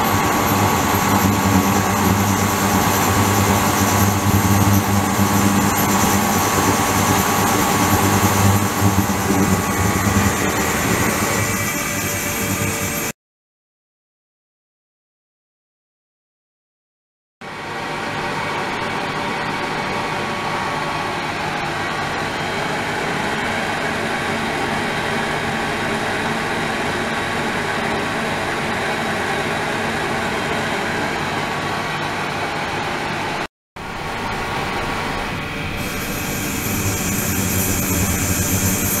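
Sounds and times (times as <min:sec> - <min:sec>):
high-pitched whine: 0:00.0 - 0:13.1, 0:17.5 - 0:39.0
pump motor humming: 0:34.0 - 0:39.0.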